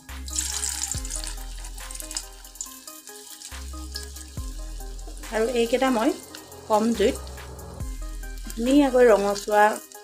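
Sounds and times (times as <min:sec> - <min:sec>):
background music: 0:00.0 - 0:10.0
oil sizzling and bubbling: 0:00.0 - 0:10.0.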